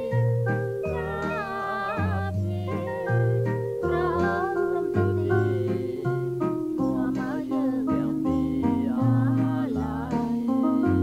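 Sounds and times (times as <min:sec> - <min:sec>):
bass notes: 0:00.0 - 0:11.0
held chords: 0:00.0 - 0:11.0
sliding melody line: 0:00.0 - 0:11.0.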